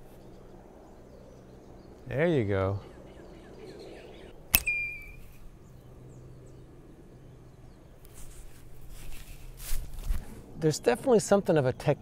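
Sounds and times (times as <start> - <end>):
faint bird chirps: 2.7 - 8.0
sharp click: 4.5 - 5.4
high whistle-like chirp: 4.6 - 5.3
rustling: 8.0 - 10.5.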